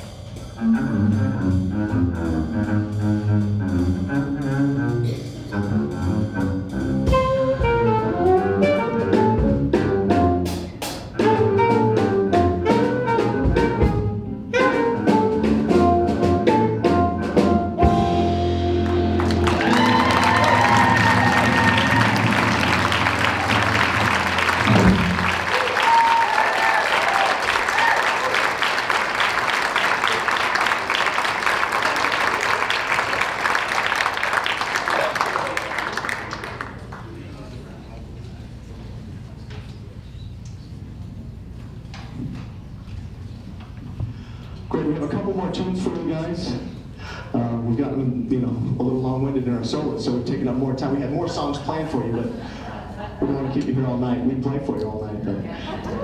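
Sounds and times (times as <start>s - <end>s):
bowed double bass: 0.2s - 25.5s
saxophone: 0.6s - 25.6s
guitar: 11.2s - 25.4s
audience applause: 18.8s - 37.6s.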